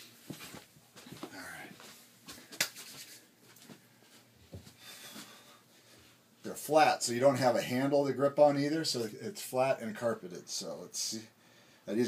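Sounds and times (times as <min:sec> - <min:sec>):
bare feet on carpeted stairs: 0:00.2 - 0:02.6, 0:03.4 - 0:05.4.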